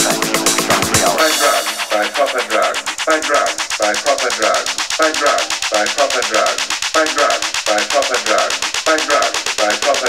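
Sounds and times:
chopped vocal sample: 0.0 - 10.0
fast percussion ticks: 0.0 - 10.0.

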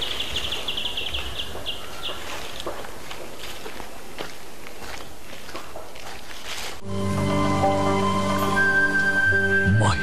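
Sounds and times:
footsteps on garden path: 0.0 - 6.9.

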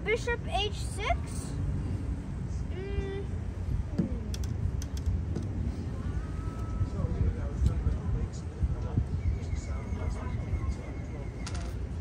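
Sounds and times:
wind buffeting microphone: 3.2 - 12.0.

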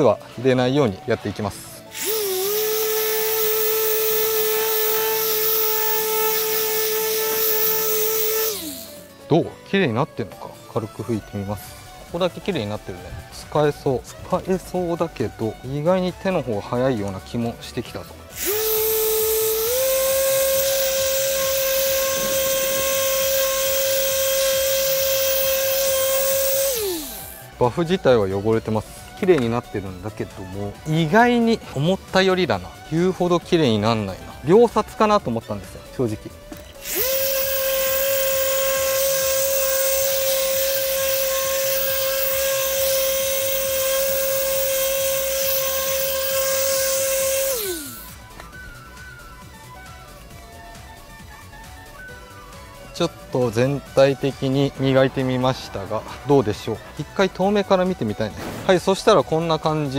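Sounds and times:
rotary polisher motor whine: 1.9 - 9.1, 18.3 - 27.5, 36.8 - 48.7.

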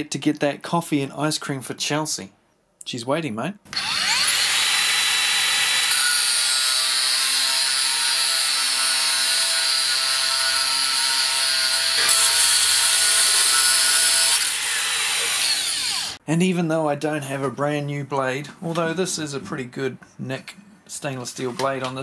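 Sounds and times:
angle grinder cutting steel: 3.7 - 16.2.

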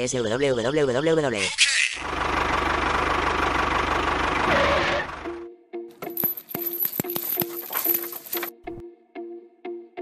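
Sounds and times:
tractor engine running: 2.0 - 5.4, 6.0 - 8.5.

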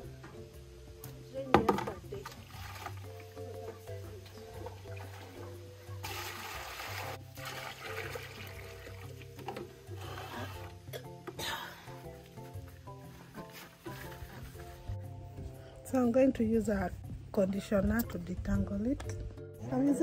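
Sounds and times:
background music: 0.0 - 20.0
water splashing into basin: 1.6 - 3.5, 4.3 - 10.7.

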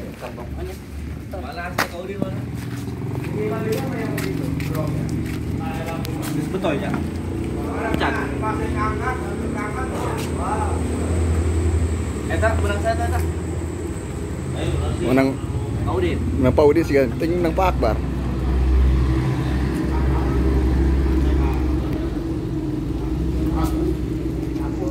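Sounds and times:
people talking in background: 0.0 - 24.9.

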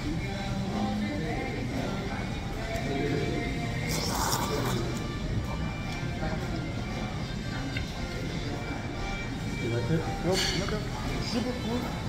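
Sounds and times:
background music: 0.0 - 12.0
diner chatter: 0.0 - 12.0
slurp of noodles: 3.8 - 5.0.

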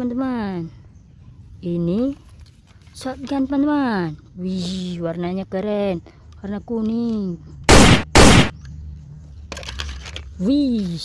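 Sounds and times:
loud gunshot blasts: 7.7 - 8.5.

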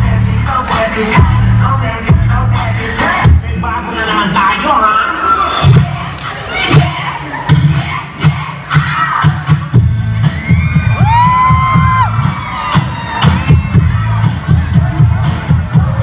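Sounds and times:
dance music with heavy bass: 0.0 - 16.0
children shouting and cheering: 6.3 - 16.0.

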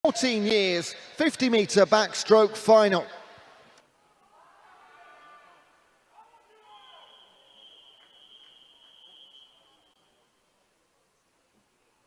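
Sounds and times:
long high-pitched whistle: 6.7 - 10.2.

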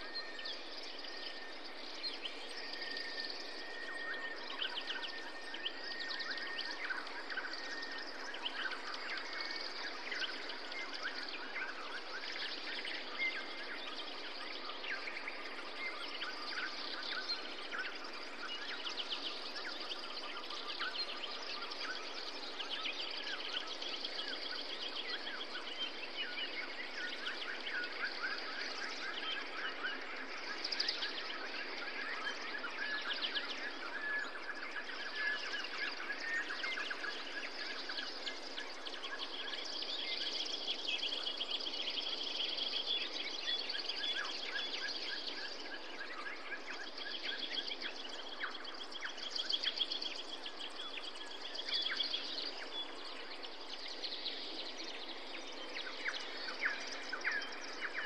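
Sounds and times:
small birds chirping: 0.0 - 58.0
steady background hiss: 0.0 - 58.0.

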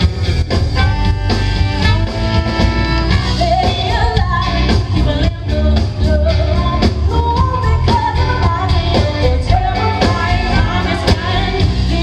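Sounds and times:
trumpet and saxophone notes: 0.0 - 5.7
live rock band playing: 0.0 - 12.0.

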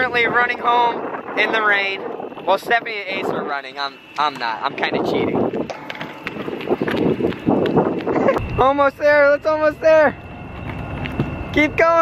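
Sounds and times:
wheels rattling over pavement: 4.2 - 12.0
running footsteps: 5.4 - 8.6, 10.2 - 11.6.

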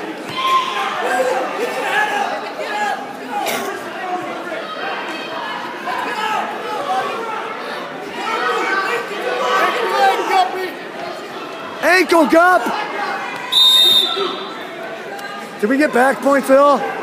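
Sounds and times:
crowd chattering: 0.0 - 17.0.

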